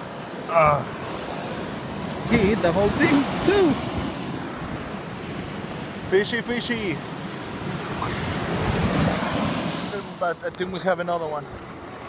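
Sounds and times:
surf washing onto beach: 0.0s - 10.8s
wind buffeting microphone: 7.0s - 9.9s.

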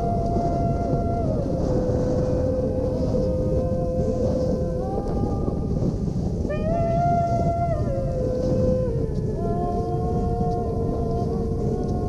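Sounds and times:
slow melody of held notes: 0.0s - 12.0s
wind rumble on microphone: 0.0s - 12.0s.

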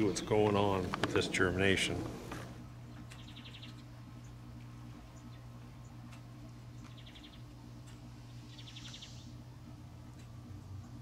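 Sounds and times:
steady low hum: 0.0s - 11.0s
bird chirping: 2.8s - 9.4s.

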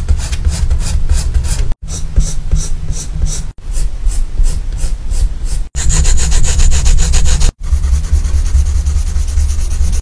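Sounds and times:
pencil scratching on paper: 4.8s - 10.0s.

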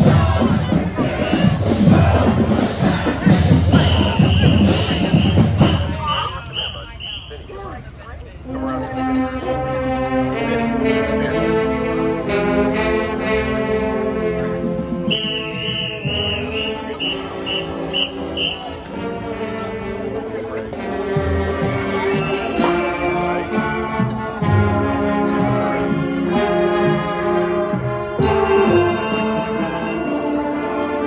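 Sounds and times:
brass band playing held chords: 0.0s - 7.2s, 8.5s - 31.0s.

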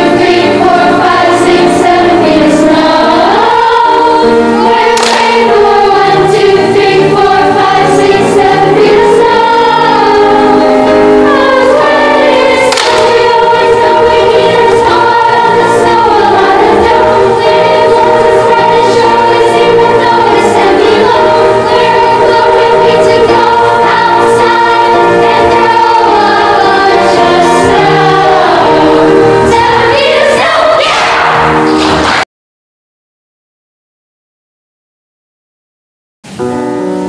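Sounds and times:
children's choir singing: 0.0s - 32.2s.

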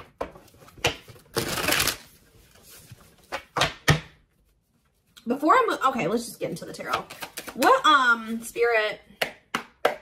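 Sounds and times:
cards riffle shuffling: 7.0s - 7.7s.

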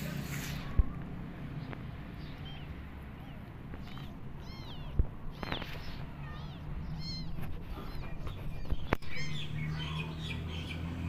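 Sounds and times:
kitten mewing: 2.4s - 5.5s, 6.2s - 10.0s.

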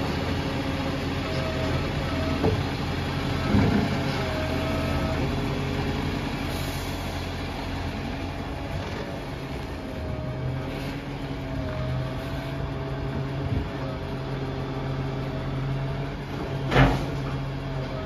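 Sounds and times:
diesel engine running with whine: 0.0s - 18.0s.

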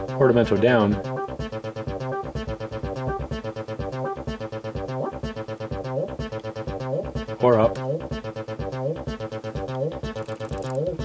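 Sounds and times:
quiet drum beat: 0.0s - 10.1s
synthesizer bass line: 0.0s - 11.0s.

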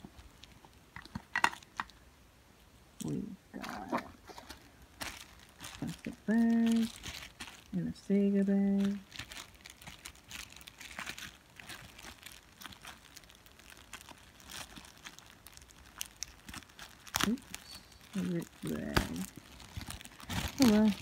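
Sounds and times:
plastic bag crinkling: 3.0s - 21.0s.

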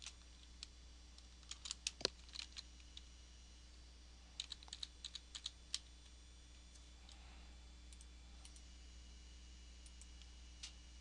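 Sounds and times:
faint low hum: 0.0s - 11.0s
keyboard typing: 1.5s - 2.6s, 4.4s - 5.6s.

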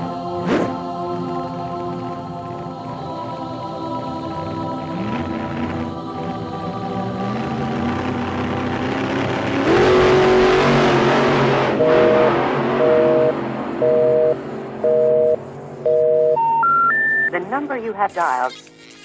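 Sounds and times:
noisy swell: 5.8s - 16.0s
telephone busy signal beeps: 11.8s - 17.5s
rising information tones: 11.8s - 18.1s
recorded operator message: 16.3s - 18.6s.

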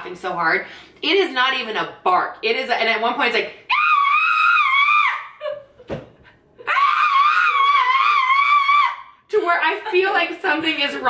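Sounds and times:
woman screaming: 3.7s - 5.6s, 6.6s - 9.2s.

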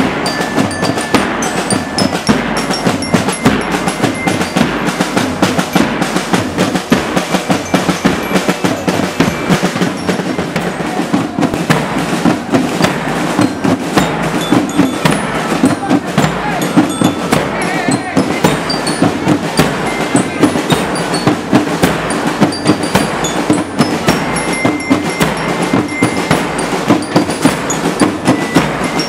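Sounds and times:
bell lyres ringing: 0.0s - 29.0s
snare and bass drums: 0.0s - 29.0s.

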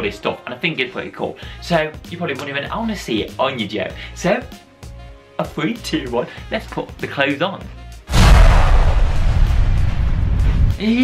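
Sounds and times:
booming rush of noise: 8.1s - 10.7s.

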